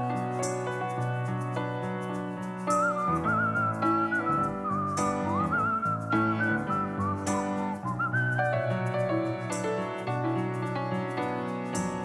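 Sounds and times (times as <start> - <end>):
sustained keyboard chords: 0.0 - 12.0
whistled melody with vibrato: 2.5 - 12.0.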